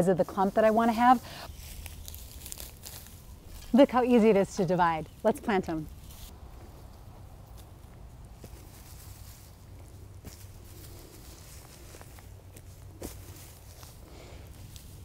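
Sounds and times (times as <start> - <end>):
footsteps on soil and mulch: 0.0 - 15.0
low outdoor hum: 0.0 - 15.0.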